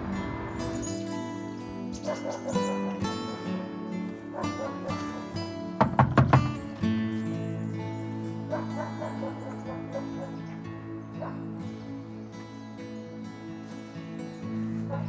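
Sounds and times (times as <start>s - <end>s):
background music with held tones: 0.0s - 15.0s
loud knocks on a door: 5.8s - 6.6s.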